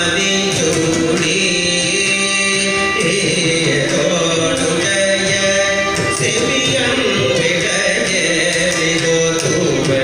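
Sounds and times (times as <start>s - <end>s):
hand drum: 0.0s - 10.0s
man singing slow melody: 0.0s - 10.0s
violin: 0.0s - 10.0s.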